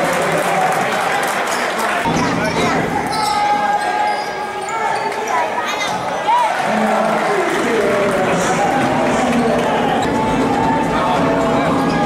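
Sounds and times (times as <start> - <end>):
echoing spectators' voices: 0.0 - 12.0
sneakers squeaking: 1.6 - 6.2.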